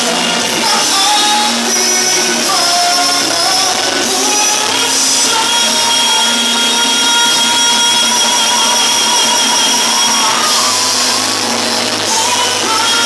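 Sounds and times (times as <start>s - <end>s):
music: 0.0s - 13.0s.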